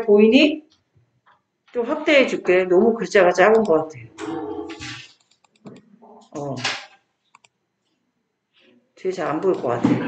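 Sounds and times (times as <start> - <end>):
computer mouse clicks: 3.5 - 5.9, 7.3 - 7.6.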